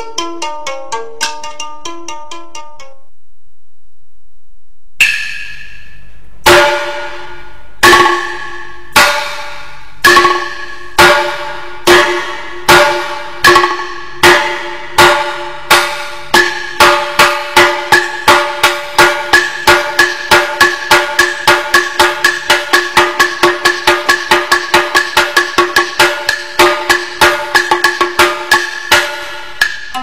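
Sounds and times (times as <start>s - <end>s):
sharp ringing percussion strikes: 5.0s - 30.0s.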